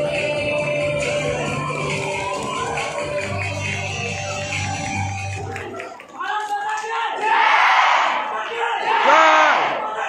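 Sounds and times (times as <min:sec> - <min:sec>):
crowd shouting together: 0:07.2 - 0:10.0
long drawn-out shout: 0:08.8 - 0:10.0.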